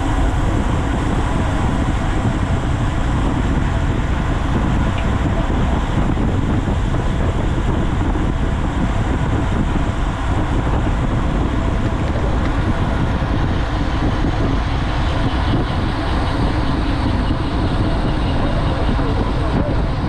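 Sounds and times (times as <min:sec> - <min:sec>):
wind noise on microphone: 0:00.0 - 0:20.0.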